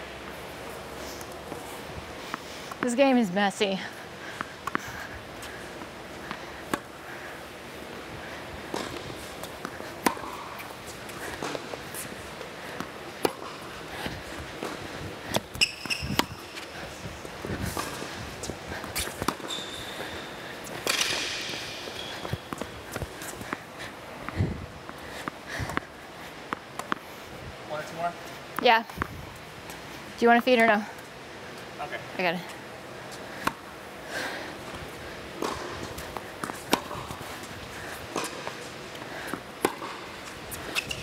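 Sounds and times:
tennis balls struck by rackets: 8.7s - 23.6s, 24.2s - 27.0s, 33.4s - 33.8s, 34.6s - 41.0s
shoes squealing: 14.6s - 17.0s, 17.7s - 23.6s, 39.7s - 41.0s.

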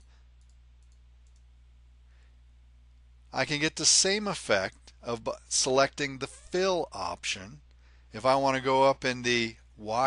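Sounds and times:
computer mouse clicks: 0.0s - 1.5s
low electrical hum: 0.0s - 10.0s.

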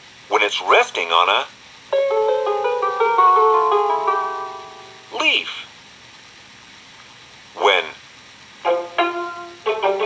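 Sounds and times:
cassette tape hiss: 0.0s - 10.0s
person speaking: 5.1s - 5.7s.

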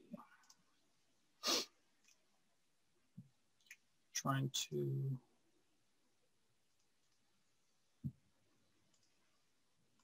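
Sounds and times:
sharp breath noise: 1.4s - 1.8s.

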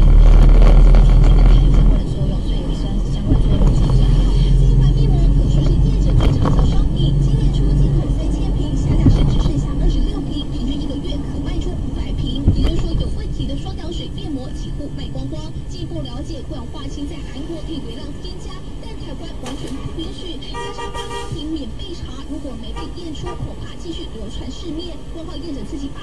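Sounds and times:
car engine and road drone: 0.0s - 26.0s.

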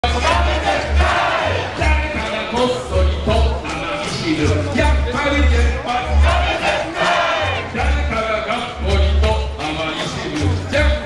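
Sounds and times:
crowd shouting and chanting: 0.0s - 11.0s.

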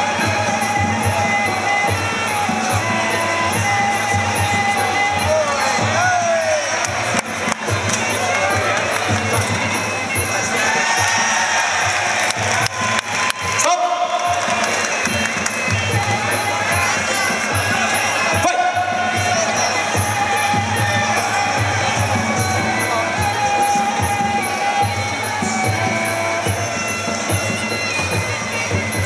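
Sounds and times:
steady drum beats: 0.0s - 29.0s
wavering oboe melody: 0.0s - 29.0s.

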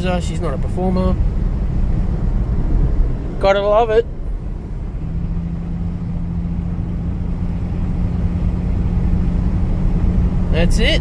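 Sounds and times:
car engine running: 0.0s - 11.0s
road rumble: 0.0s - 11.0s.

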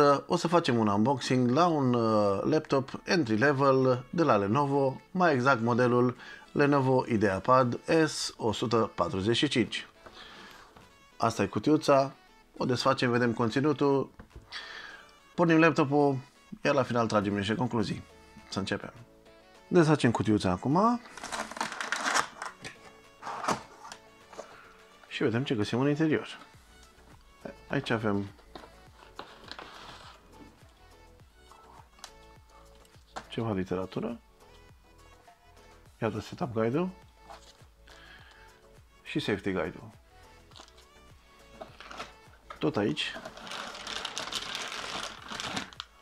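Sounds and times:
soft background music: 0.0s - 46.0s
cardboard rustling and tearing: 21.0s - 24.0s, 28.5s - 30.2s, 41.6s - 42.2s, 43.2s - 46.0s
plastic bag crinkling: 21.0s - 24.0s, 40.5s - 40.9s, 41.6s - 46.0s
cardboard flap snapping: 21.2s - 24.0s.

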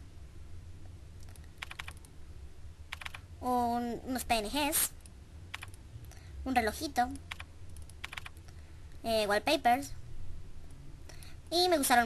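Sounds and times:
steady low hum: 0.0s - 12.0s
computer mouse clicks: 1.2s - 2.2s, 2.9s - 3.3s, 4.9s - 6.2s, 7.1s - 8.6s.

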